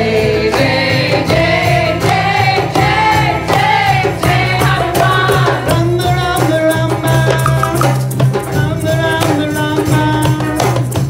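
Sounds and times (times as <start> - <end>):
hand percussion: 3.5 - 11.0.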